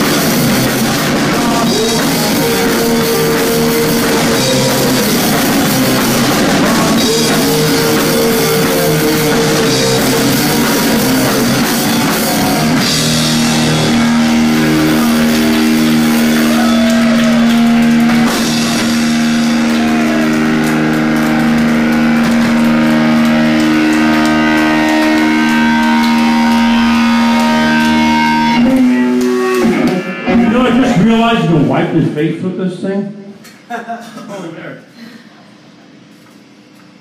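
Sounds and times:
live rock band playing: 0:00.0 - 0:31.6
held electric guitar note: 0:01.7 - 0:32.2.

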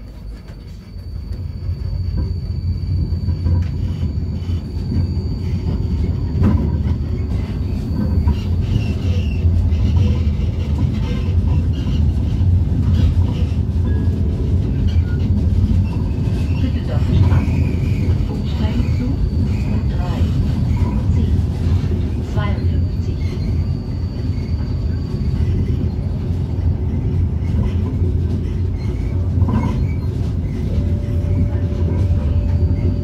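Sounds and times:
tram wheels rumbling on rails: 0:00.0 - 0:33.0.

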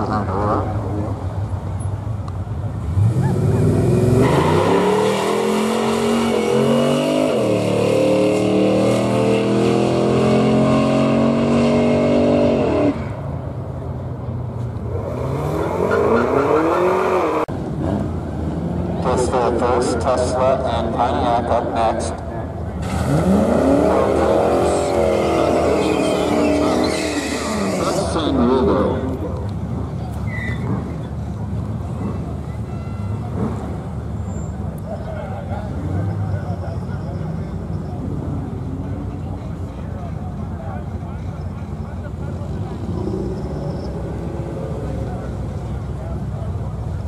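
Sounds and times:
drag car engine revving: 0:02.8 - 0:13.2, 0:22.7 - 0:29.8.

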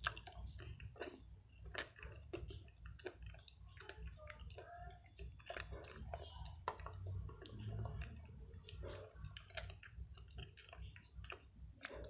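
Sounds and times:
chewing clay: 0:00.0 - 0:12.0.

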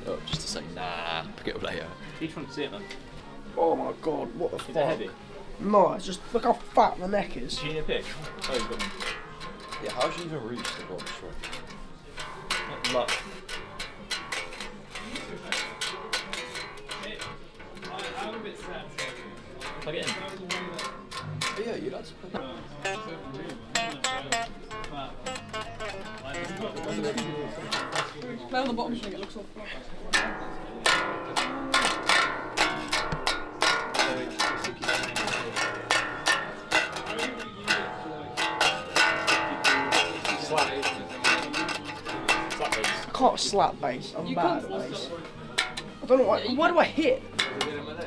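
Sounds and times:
fret noise: 0:00.0 - 0:48.0.

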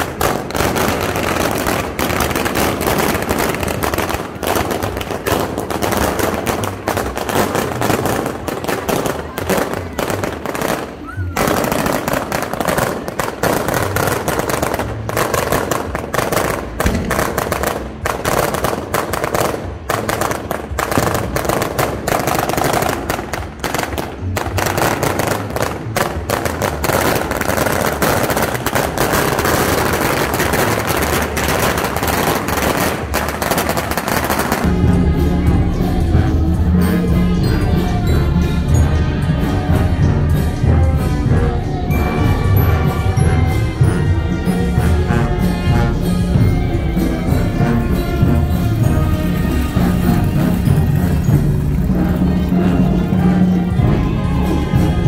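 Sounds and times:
firecrackers crackling: 0:00.0 - 0:55.0.

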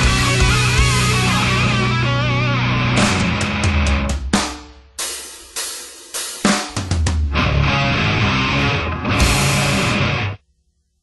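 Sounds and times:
distorted guitar with bent notes: 0:00.0 - 0:04.4, 0:07.2 - 0:10.4
drums: 0:00.0 - 0:10.4
sharp drum and guitar hits: 0:00.0 - 0:10.4.

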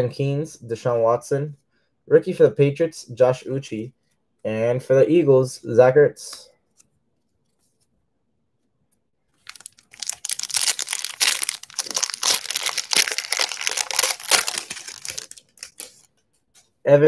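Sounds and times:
foil wrapper crinkling: 0:09.4 - 0:16.1.

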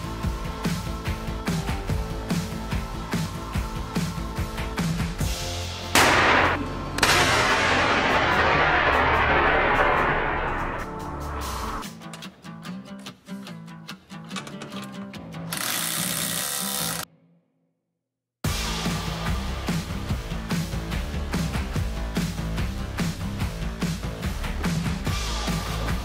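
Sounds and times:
background music: 0:00.0 - 0:16.9, 0:18.5 - 0:26.0
airbag deploying bang: 0:06.0 - 0:10.9.

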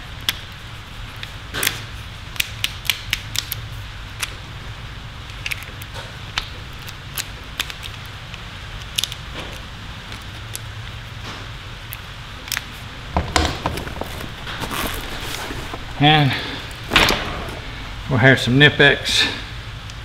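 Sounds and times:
tool bag knocks and rustles: 0:13.1 - 0:16.0, 0:16.9 - 0:17.6.

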